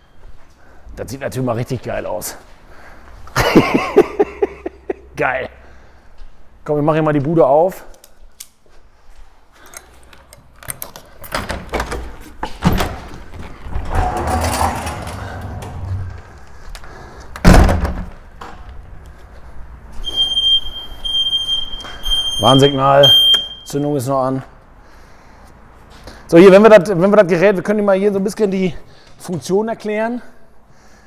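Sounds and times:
door clunking and rattling: 10.6s - 16.5s, 17.4s - 18.6s
loud thump: 17.4s - 18.2s
mower warning buzzer beeping: 20.0s - 23.8s.

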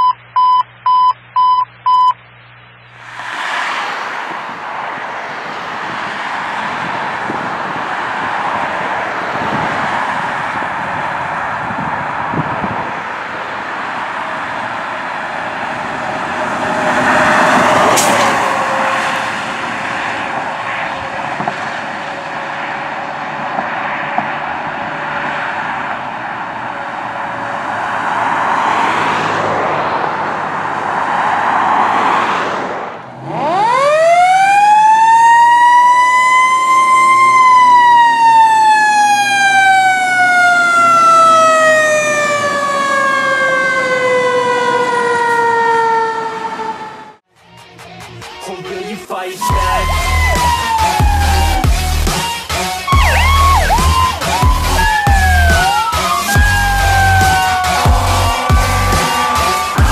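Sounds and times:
road traffic noise: 0.0s - 59.9s
mechanical fire truck siren: 14.2s - 22.6s, 33.2s - 47.2s, 49.4s - 59.9s.

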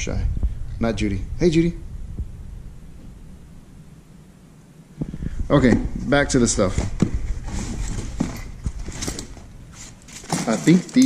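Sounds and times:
leather clothing rustling: 6.5s - 11.0s.

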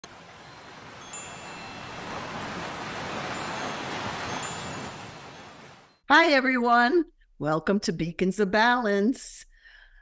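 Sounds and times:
wind chimes ringing: 0.2s - 6.0s.

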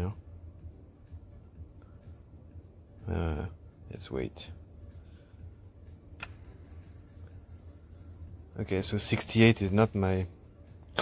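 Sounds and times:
short high-pitched beeps: 6.2s - 6.8s.

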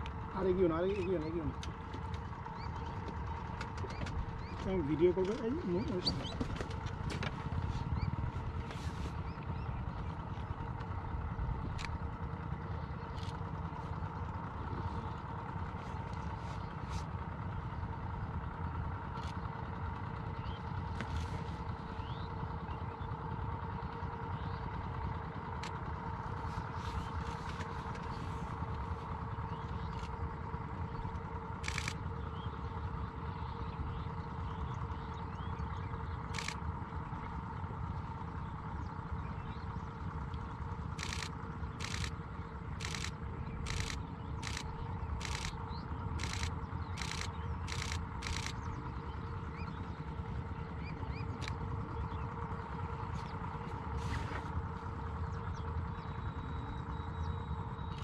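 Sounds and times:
small engine droning: 0.0s - 58.0s
camera shutter clicks: 31.6s - 32.0s, 41.0s - 42.2s, 42.8s - 45.6s, 46.2s - 48.6s.

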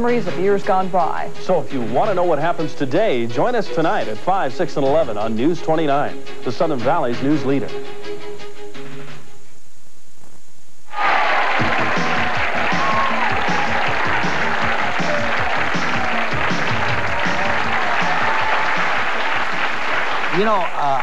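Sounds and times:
upbeat theme music: 0.0s - 9.2s, 11.0s - 21.0s
audience applauding and cheering: 10.9s - 21.0s.

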